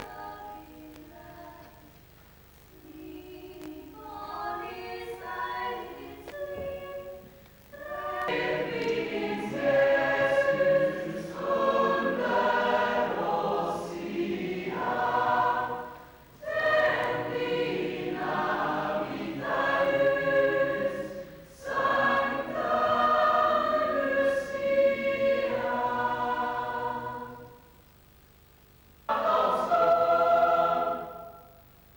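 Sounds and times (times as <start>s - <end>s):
choir singing: 2.8s - 27.7s, 29.1s - 31.6s.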